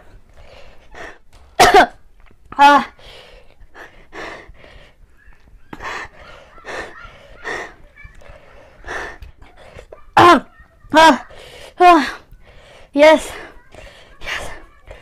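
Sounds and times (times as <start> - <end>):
woman coughing: 1.6 - 2.0.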